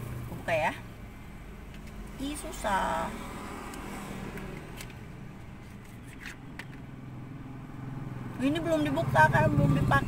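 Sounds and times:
fingers clicking and scraping bottle cap: 3.7 - 6.9.

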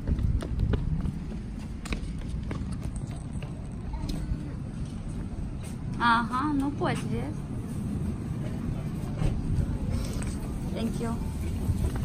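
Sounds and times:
footsteps: 0.0 - 10.6
stroller wheels rolling on concrete: 0.0 - 12.0.

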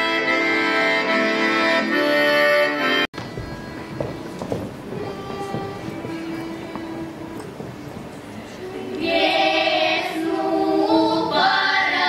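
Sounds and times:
girls' choir singing folk song: 3.2 - 12.0.

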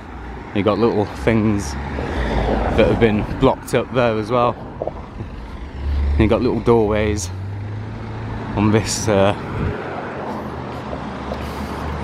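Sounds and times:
car driving past: 4.7 - 6.7.

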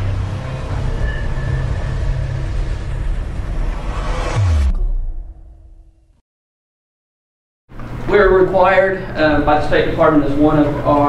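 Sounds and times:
dense rumble: 0.0 - 6.2
low drone: 0.0 - 6.2.

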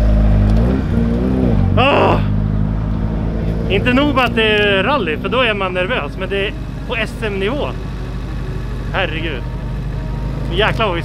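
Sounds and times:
car engine running: 0.0 - 11.0
man exclaiming: 1.8 - 2.4.

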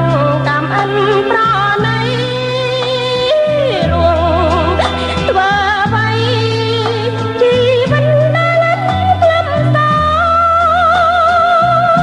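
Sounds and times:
pop song with wavering melody: 0.0 - 12.0.

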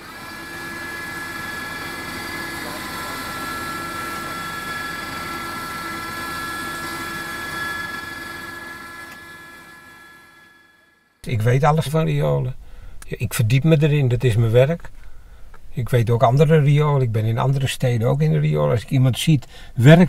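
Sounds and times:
machine hum with high whine: 0.0 - 20.0.

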